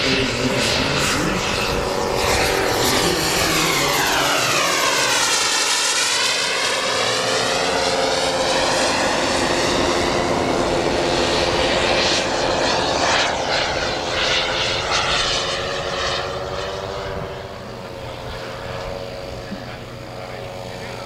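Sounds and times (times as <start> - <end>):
model jet turbine flying past: 0.0 - 21.0.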